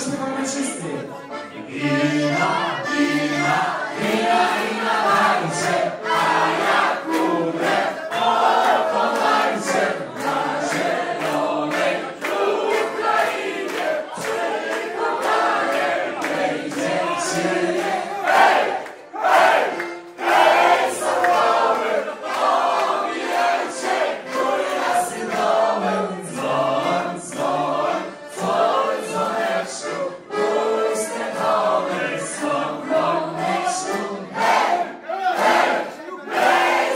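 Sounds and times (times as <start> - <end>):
crowd singing unaccompanied: 0.0 - 36.9
rhythmic hand-clapping: 2.4 - 36.9.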